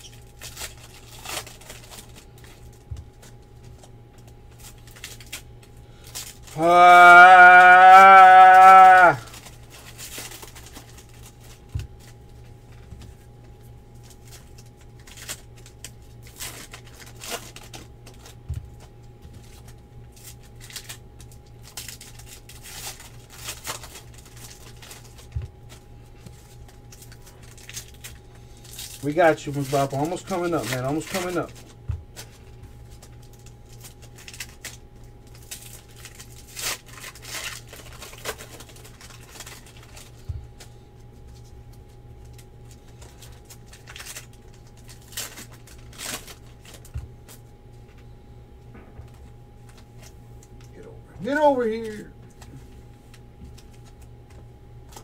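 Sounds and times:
cards rustling: 0:00.0 - 0:07.3, 0:08.4 - 0:48.2, 0:49.1 - 0:55.0
foil wrapper crinkling: 0:00.0 - 0:48.2, 0:49.0 - 0:55.0
steady low hum: 0:00.0 - 0:55.0.

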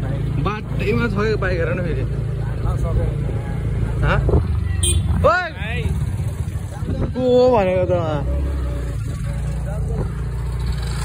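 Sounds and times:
motorbike engine rumbling: 0:00.0 - 0:11.0.

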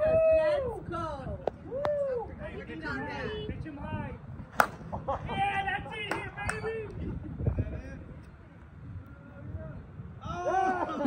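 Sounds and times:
bat hitting softball: 0:04.5 - 0:05.0.

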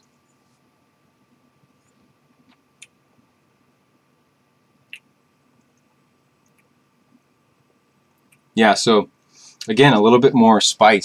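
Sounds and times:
faint mouth clicks: 0:04.9 - 0:05.1.

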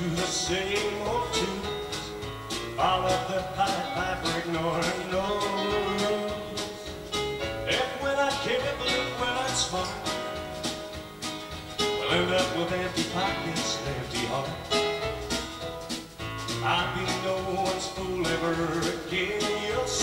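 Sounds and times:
live country band playing: 0:00.0 - 0:20.0.

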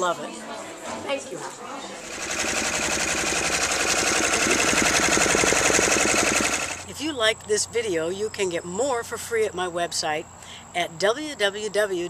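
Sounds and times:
embroidery machine stitching: 0:02.0 - 0:06.9.

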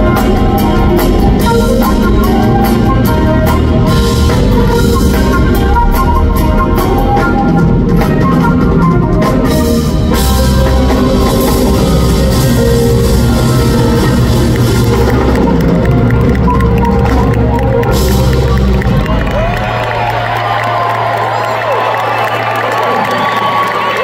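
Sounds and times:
smooth jazz band playing: 0:00.0 - 0:22.7
audience cheering and whooping: 0:00.0 - 0:24.0.

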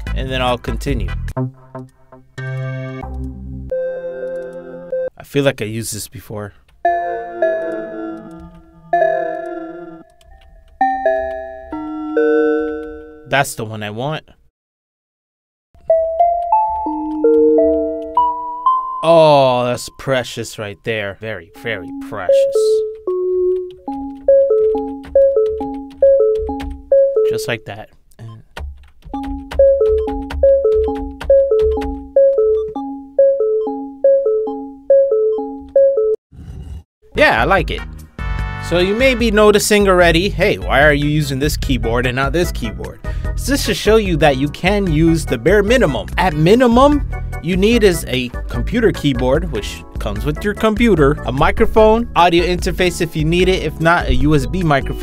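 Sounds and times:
keyboard instrument melody: 0:01.4 - 0:05.2, 0:06.8 - 0:13.5, 0:15.8 - 0:20.2, 0:20.8 - 0:27.8, 0:28.8 - 0:36.2, 0:43.9 - 0:55.0
plucked looping synth notes: 0:06.9 - 0:13.1, 0:15.8 - 0:19.7, 0:21.5 - 0:27.6, 0:29.1 - 0:36.2
bell-like synth chords: 0:15.9 - 0:20.0, 0:21.6 - 0:23.4.

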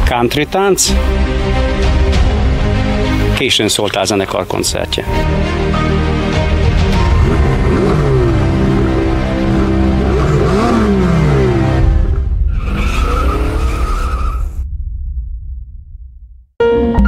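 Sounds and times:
music: 0:00.0 - 0:13.6, 0:16.6 - 0:17.0
low rumble: 0:06.4 - 0:16.6
car engine sweeping in pitch: 0:06.8 - 0:14.5
high tyre squeal: 0:12.5 - 0:14.6.

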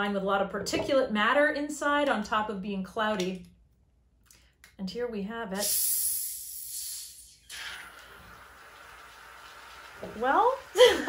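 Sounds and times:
gas hissing from bottle: 0:05.6 - 0:10.8.

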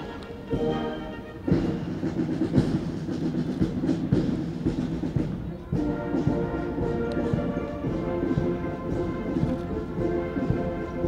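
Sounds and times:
drums beating: 0:00.0 - 0:11.0
military band march: 0:00.0 - 0:11.0.

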